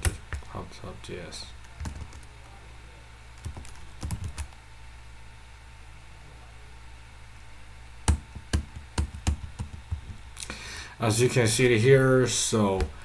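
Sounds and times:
computer keyboard keystrokes: 0:03.4 - 0:04.6, 0:09.0 - 0:10.2.

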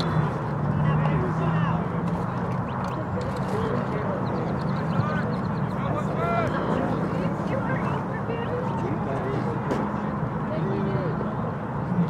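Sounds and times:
distant voices calling out: 0:00.0 - 0:12.0.

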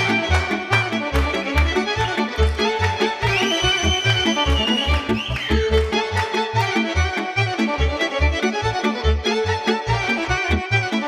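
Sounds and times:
accordion: 0:00.0 - 0:11.0
violin lead: 0:00.0 - 0:11.0.

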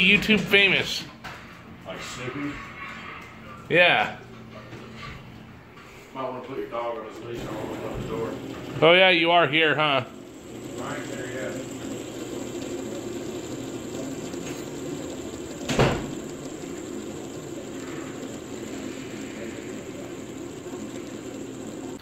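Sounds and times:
fidget spinner whirring: 0:06.7 - 0:22.0.

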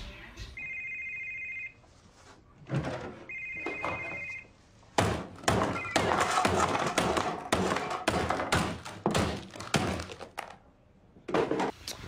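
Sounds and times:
mobile phone ringing: 0:00.6 - 0:01.8, 0:03.3 - 0:04.5.

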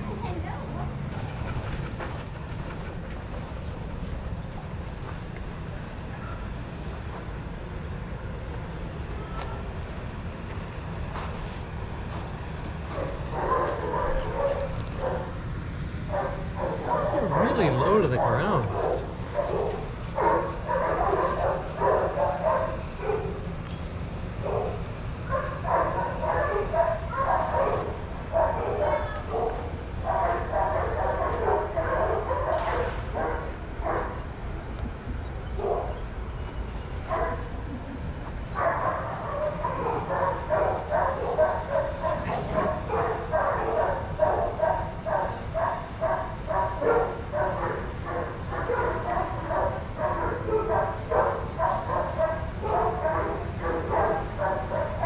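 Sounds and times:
dogs barking: 0:12.8 - 0:15.4, 0:16.0 - 0:23.6, 0:24.3 - 0:55.0.

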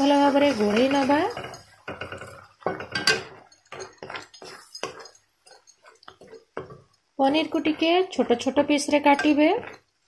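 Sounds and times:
spatula scraping metal pan: 0:00.0 - 0:10.0.

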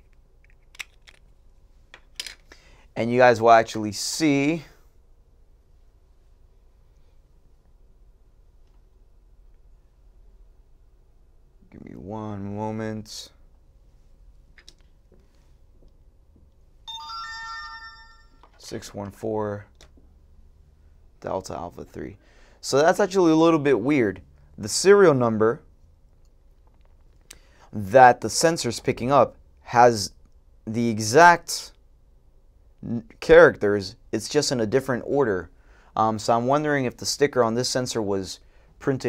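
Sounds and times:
electronic alert chime: 0:16.9 - 0:18.4.

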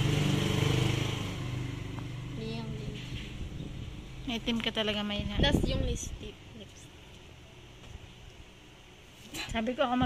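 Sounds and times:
vehicle engine low hum: 0:00.0 - 0:09.1.

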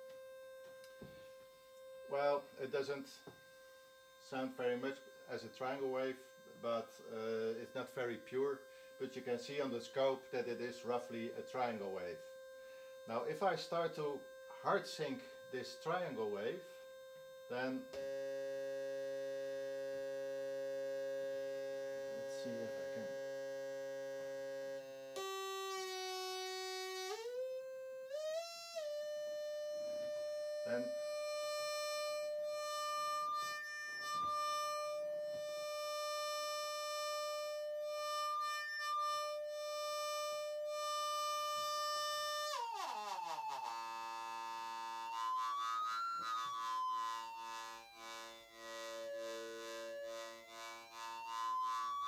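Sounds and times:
steady synthesizer tone: 0:00.0 - 0:52.0.

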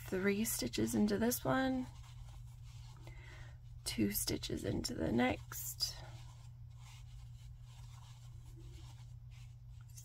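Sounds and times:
low steady hum: 0:00.0 - 0:10.0
crochet hook scraping yarn: 0:04.4 - 0:10.0.

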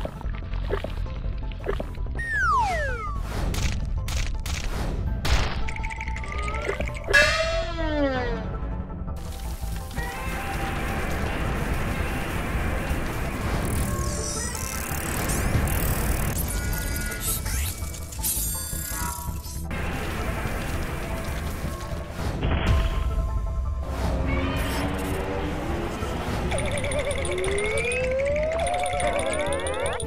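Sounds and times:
cartoon sound effects: 0:02.2 - 0:03.2, 0:06.2 - 0:08.5, 0:26.5 - 0:30.0
cartoon music: 0:02.2 - 0:03.3, 0:05.9 - 0:08.7, 0:24.2 - 0:30.0.

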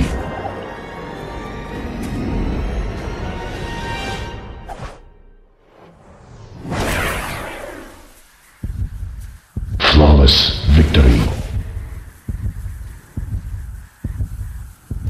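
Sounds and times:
music: 0:00.0 - 0:05.8
whooshes: 0:05.6 - 0:09.8
sharp thumps: 0:07.3 - 0:10.0, 0:11.2 - 0:15.0.

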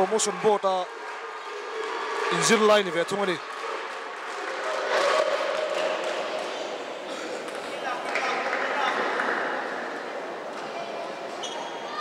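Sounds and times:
echoing crowd murmur: 0:00.0 - 0:12.0.

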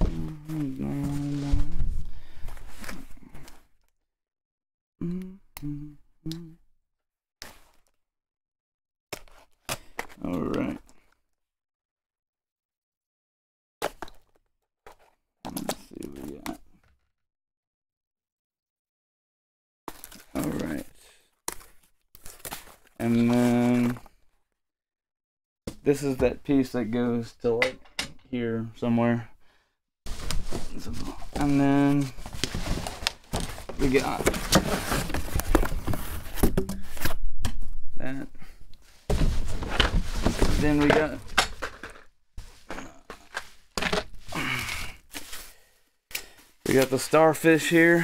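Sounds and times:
short vocal sound: 0:00.0 - 0:01.8, 0:05.0 - 0:06.6
cardboard packing rustling: 0:00.0 - 0:03.7, 0:21.5 - 0:24.2, 0:30.1 - 0:37.2, 0:38.8 - 0:48.0
packing wrap rustling: 0:30.1 - 0:36.4.

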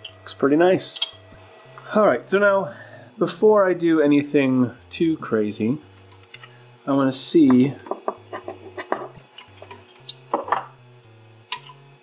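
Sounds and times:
soft music with plodding bass: 0:04.6 - 0:12.0.

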